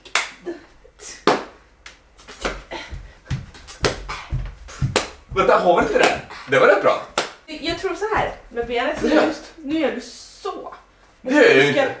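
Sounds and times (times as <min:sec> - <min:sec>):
person beatboxing: 0:04.0 - 0:04.9, 0:06.2 - 0:06.6.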